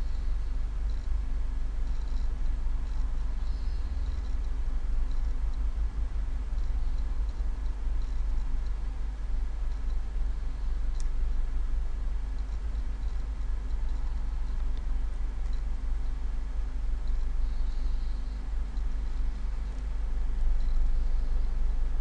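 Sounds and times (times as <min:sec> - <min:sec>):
low rumble and hum: 0:00.0 - 0:22.0.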